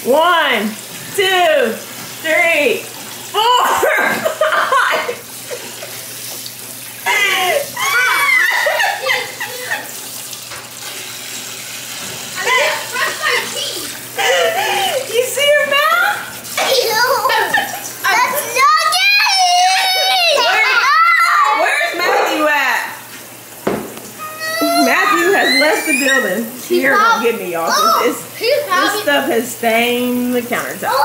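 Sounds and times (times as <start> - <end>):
faucet running into sink: 0.0 - 22.0, 22.9 - 31.0
children shouting: 7.1 - 9.8, 18.1 - 22.0, 24.2 - 27.1.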